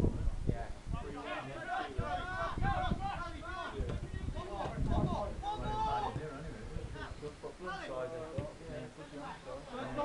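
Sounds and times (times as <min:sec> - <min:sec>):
voices talking and calling out: 0:00.6 - 0:10.0.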